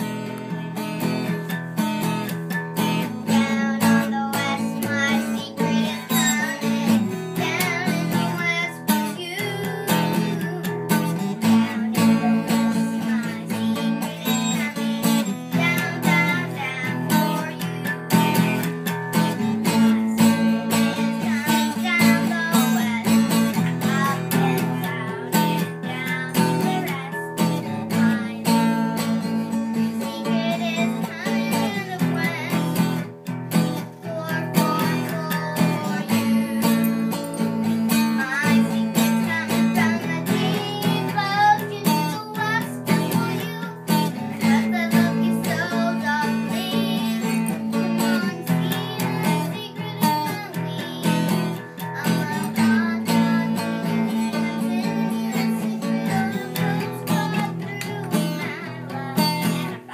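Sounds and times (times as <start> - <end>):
strummed acoustic guitar: 0.0 - 59.9
person singing: 2.0 - 59.9.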